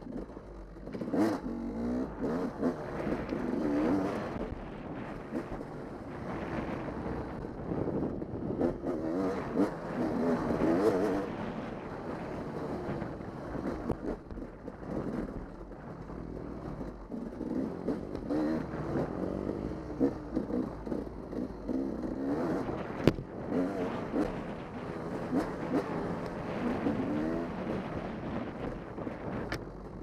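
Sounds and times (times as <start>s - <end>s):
dirt bike engine revving: 0.1s - 5.6s, 6.2s - 14.2s, 17.0s - 29.4s.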